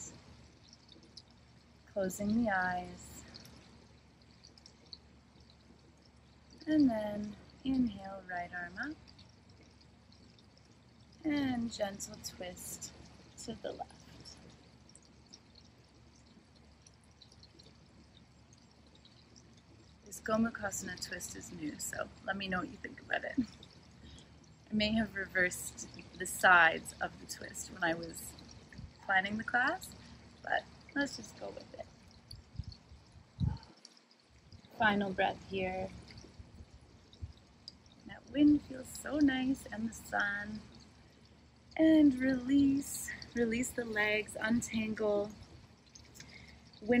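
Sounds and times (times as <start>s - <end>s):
soft ticks: 3.0s - 8.0s, 8.7s - 46.8s
light wind on microphone: 28.7s - 29.1s, 31.7s - 33.7s.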